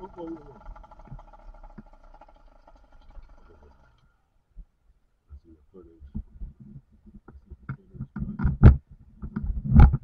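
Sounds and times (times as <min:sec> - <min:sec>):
small two-stroke engine running: 0:00.0 - 0:04.1.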